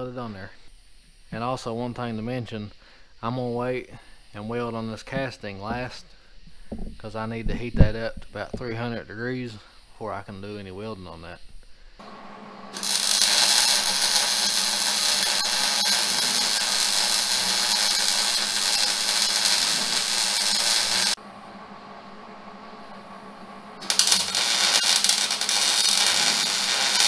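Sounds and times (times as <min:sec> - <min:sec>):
welder arc crackling: 0:12.0 - 0:21.2, 0:23.8 - 0:27.0.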